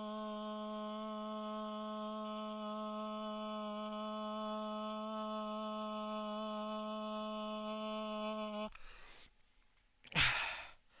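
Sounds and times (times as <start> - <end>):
man singing long note: 0.0 - 8.7
man sighing: 10.1 - 10.8.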